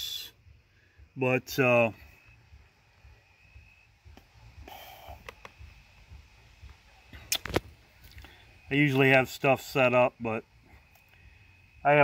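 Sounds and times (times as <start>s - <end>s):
sharp clicks or taps: 5.2s - 5.6s.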